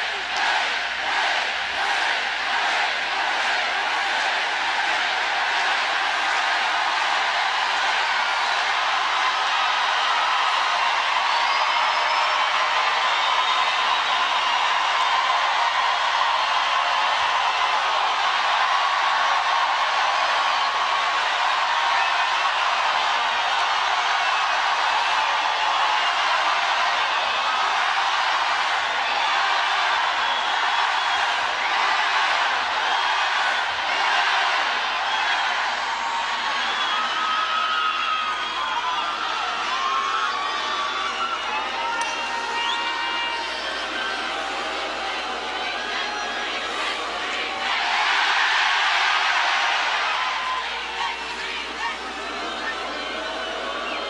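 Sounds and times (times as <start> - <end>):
stadium crowd cheering: 0.0 - 54.0.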